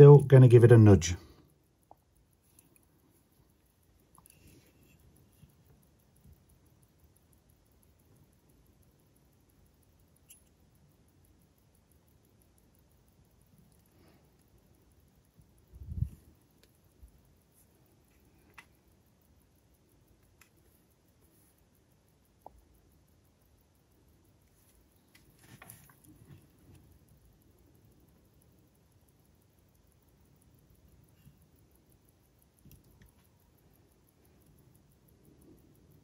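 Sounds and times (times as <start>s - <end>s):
small sharp clicks: 1.2s - 36.0s.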